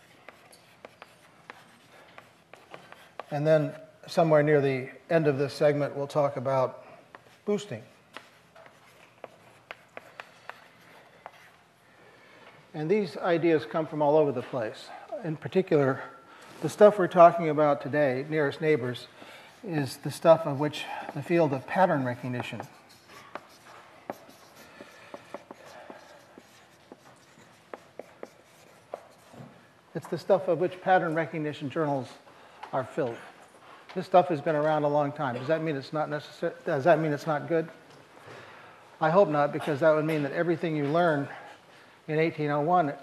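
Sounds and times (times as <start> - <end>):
chalk scratching on blackboard: 0.0 - 3.4, 7.8 - 11.6, 19.5 - 29.5
chalk tapping on blackboard: 0.2 - 3.4, 8.1 - 11.5, 19.6 - 29.5.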